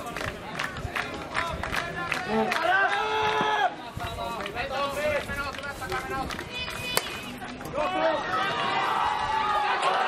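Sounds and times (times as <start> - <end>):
players shouting: 6.6 - 10.0.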